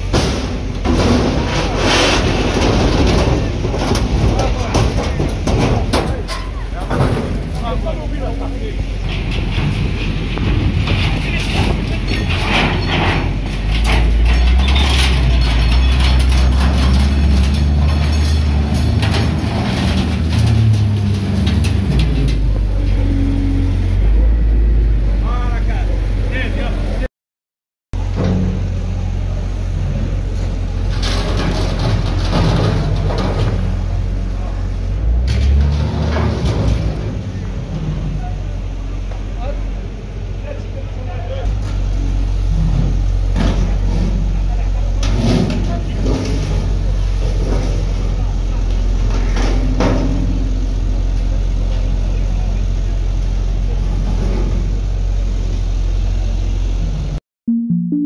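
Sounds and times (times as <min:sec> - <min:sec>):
metal clattering and scraping: 0:00.0 - 0:24.0, 0:30.2 - 0:39.2, 0:41.5 - 0:51.9
diesel engine running hard: 0:00.0 - 0:27.1, 0:28.0 - 0:57.2
people's voices: 0:02.6 - 0:16.8.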